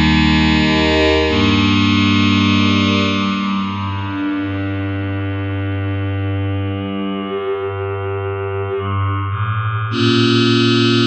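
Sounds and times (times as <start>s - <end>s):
synthesizer low sustained note: 0.0s - 11.0s.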